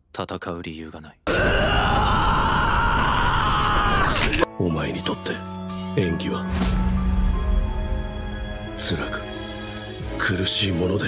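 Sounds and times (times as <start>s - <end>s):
man screaming: 1.3s - 4.4s.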